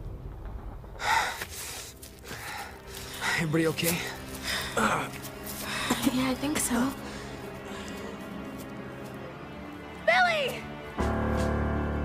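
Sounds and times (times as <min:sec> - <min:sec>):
man breathing: 0:01.0 - 0:03.4.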